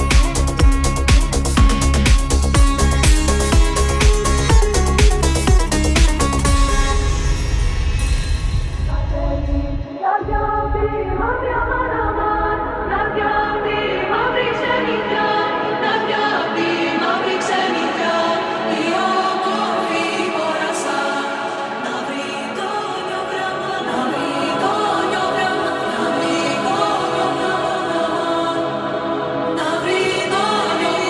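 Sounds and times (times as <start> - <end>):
synth chords: 0.0 - 8.2
choir-like vocals: 9.8 - 31.0.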